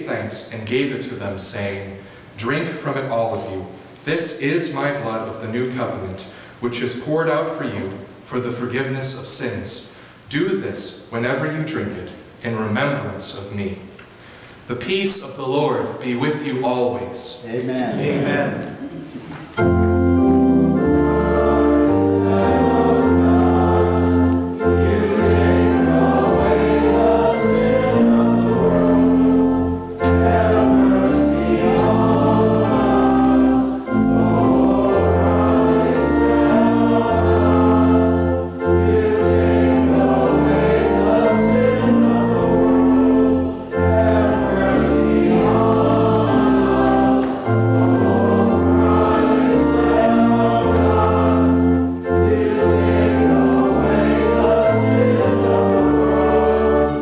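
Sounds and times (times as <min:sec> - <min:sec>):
group singing a hymn: 0:17.8 - 0:57.0
instrumental accompaniment: 0:17.9 - 0:57.0.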